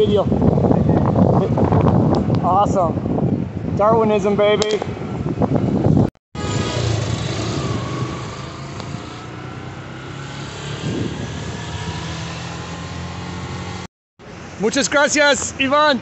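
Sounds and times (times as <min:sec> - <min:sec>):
wind noise on microphone: 0:00.0 - 0:09.4, 0:10.5 - 0:13.8
motorcycle engine running: 0:06.4 - 0:13.9.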